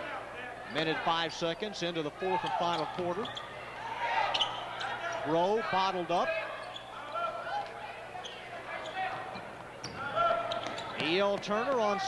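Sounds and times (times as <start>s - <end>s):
crowd noise: 0.0s - 12.0s
sneaker squeaks: 2.4s - 3.6s, 4.2s - 5.2s, 6.5s - 7.1s, 8.2s - 11.4s.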